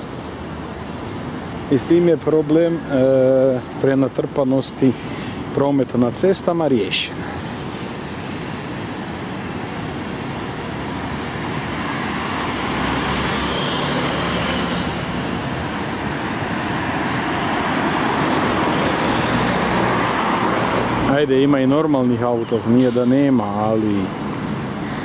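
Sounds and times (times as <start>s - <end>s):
passing cars: 0.0s - 25.0s
bus engine hum: 6.7s - 21.1s.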